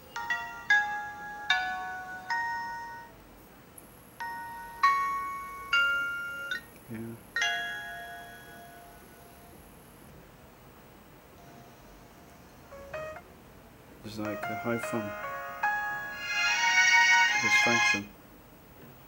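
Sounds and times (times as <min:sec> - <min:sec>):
music through phone loudspeaker: 0:14.2 - 0:18.1.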